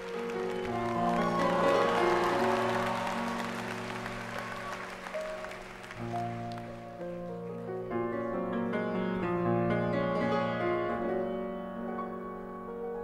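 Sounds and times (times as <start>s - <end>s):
audience applauding: 0.0s - 7.2s
grand piano chords: 0.0s - 13.0s.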